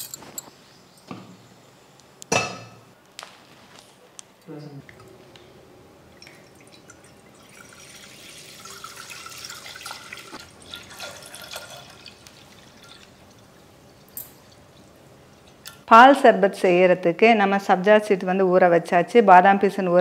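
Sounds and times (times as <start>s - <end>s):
milk pouring into metal pot: 6.2s - 14.6s.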